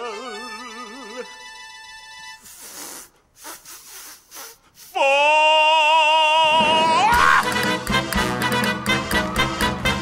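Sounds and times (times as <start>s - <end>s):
man's breathy laughing puffs: 2.5s - 4.9s.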